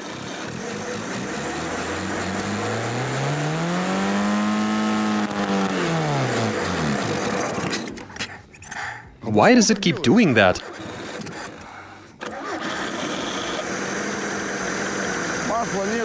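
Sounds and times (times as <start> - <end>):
car engine revving: 0.0 - 7.8.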